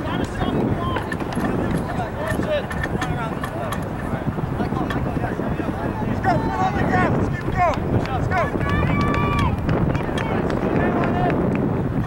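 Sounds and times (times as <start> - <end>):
low background rumble: 0.0 - 12.0
people calling and shouting: 0.0 - 12.0.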